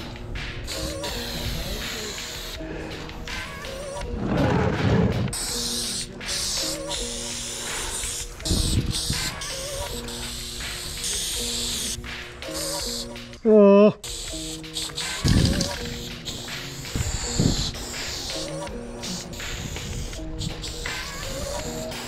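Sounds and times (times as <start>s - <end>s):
background music: 0.0s - 22.0s
spray paint can hissing: 0.6s - 2.6s, 5.3s - 13.1s, 14.1s - 22.0s.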